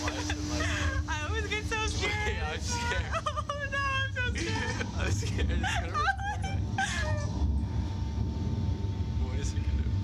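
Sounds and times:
steady low rumble: 0.0 - 10.0
thin steady hum: 0.0 - 10.0.

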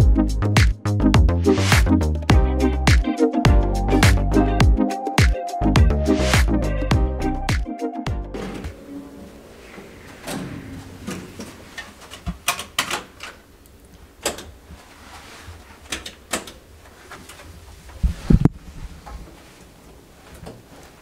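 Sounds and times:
clicks and knocks of handling: 11.1 - 14.6, 15.8 - 17.5.

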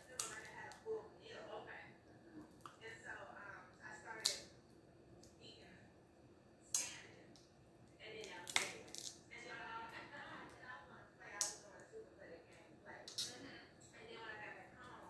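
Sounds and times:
crab shell cracking: 0.0 - 0.8, 4.2 - 4.5, 8.2 - 9.2, 11.4 - 11.6.

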